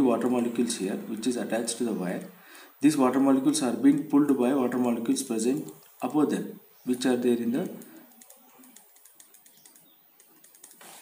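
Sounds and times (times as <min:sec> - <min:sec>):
paper rustle: 0:10.4 - 0:11.0.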